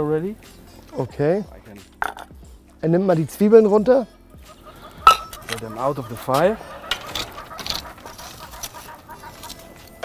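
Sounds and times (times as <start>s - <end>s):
tongs clicking and scraping on grill: 6.9s - 10.0s.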